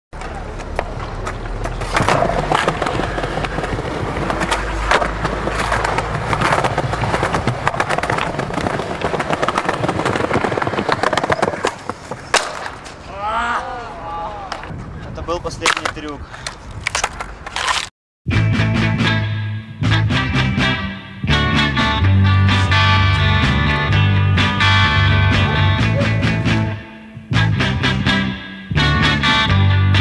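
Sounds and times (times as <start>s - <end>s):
skateboard tail clacks: 0.2s - 12.9s
skateboard wheels rolling on pavement: 0.2s - 13.2s.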